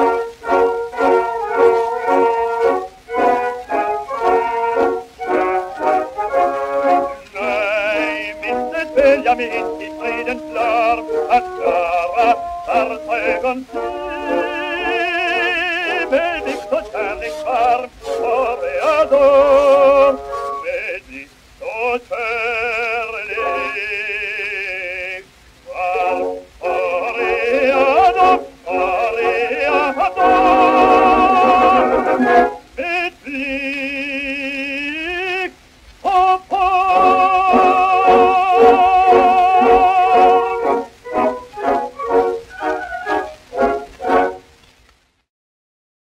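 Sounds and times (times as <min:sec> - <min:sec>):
orchestra closing chords: 0:00.0 - 0:21.0, 0:23.3 - 0:23.9, 0:25.7 - 0:32.8, 0:36.8 - 0:44.5
operatic baritone singing: 0:00.0 - 0:44.4.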